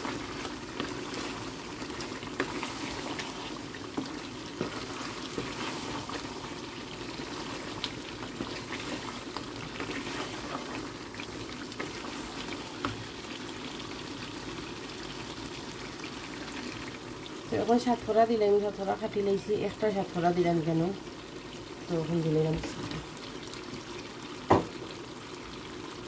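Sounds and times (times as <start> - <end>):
wooden spatula scraping pan: 0.0 - 11.0
curry sizzling in frying pan: 0.0 - 26.0.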